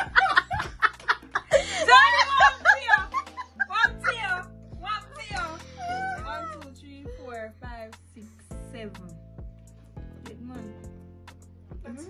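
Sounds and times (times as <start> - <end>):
background music with slow beat: 0.0 - 12.0.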